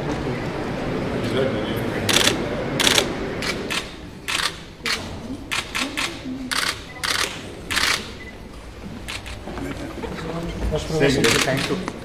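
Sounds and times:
room murmur: 0:00.0 - 0:12.0
camera shutters clicking: 0:02.1 - 0:08.1, 0:09.1 - 0:09.4, 0:11.2 - 0:11.9.

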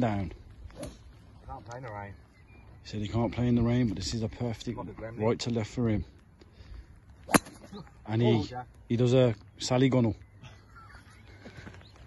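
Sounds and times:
golf club striking ball: 0:07.3 - 0:07.7.

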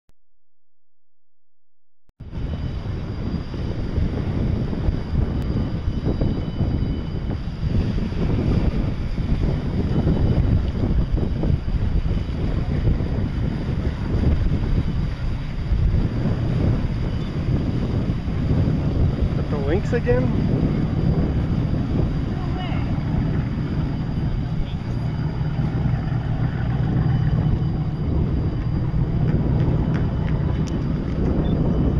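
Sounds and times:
wind buffeting microphone: 0:02.2 - 0:31.9.

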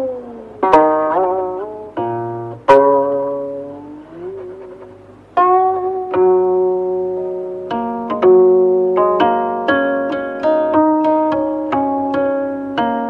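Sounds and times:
plucked string instrument notes: 0:00.0 - 0:13.0.

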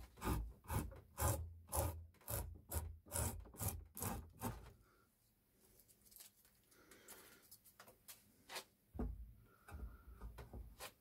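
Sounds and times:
hand plane scraping wood: 0:00.0 - 0:04.8.

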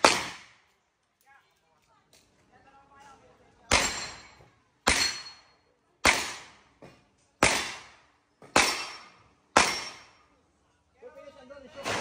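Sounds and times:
pistol shots echoing: 0:00.0 - 0:00.6, 0:03.7 - 0:05.4, 0:06.0 - 0:06.6, 0:07.4 - 0:10.2.

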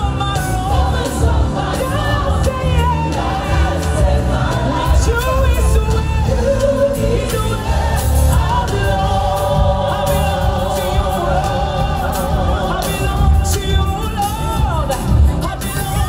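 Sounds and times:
gospel choir singing: 0:00.0 - 0:16.0
heavy bass accompaniment: 0:00.0 - 0:16.0
lead singer: 0:00.0 - 0:16.0.

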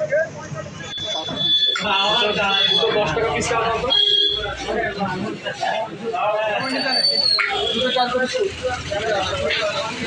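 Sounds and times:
road traffic: 0:00.0 - 0:10.0
voices talking: 0:00.0 - 0:10.0.

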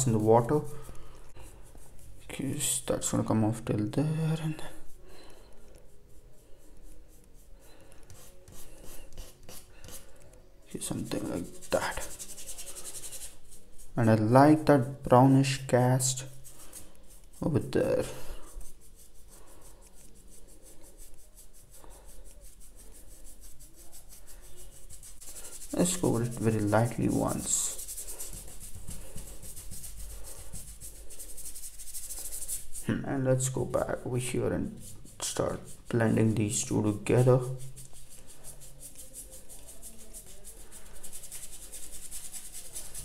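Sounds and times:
paintbrush scrubbing on paper: 0:00.0 - 0:43.0.

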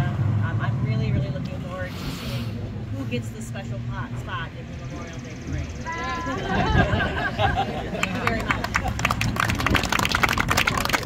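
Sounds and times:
people applauding: 0:07.6 - 0:11.0.

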